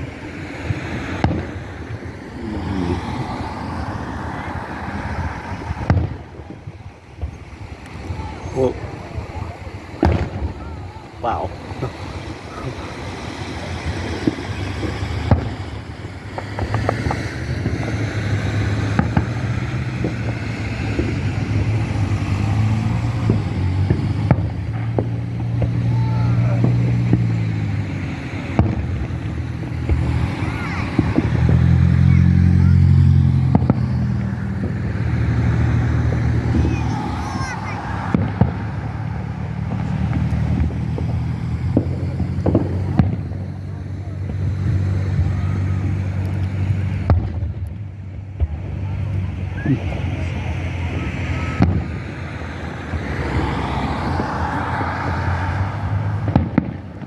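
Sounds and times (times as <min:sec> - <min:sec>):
engine humming: 0:00.0 - 0:57.0
fireworks bangs and crackles: 0:00.0 - 0:57.0
people's voices: 0:00.0 - 0:57.0.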